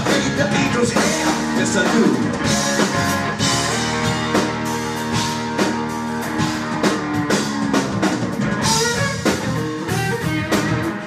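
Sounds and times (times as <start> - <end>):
drum kit beat: 0.0 - 11.0
electric bass: 0.0 - 11.0
electric guitar: 0.0 - 11.0.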